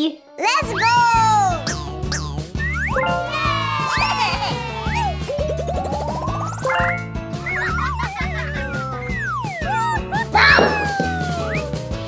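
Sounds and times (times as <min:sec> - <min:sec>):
upbeat background music: 0:00.0 - 0:12.0.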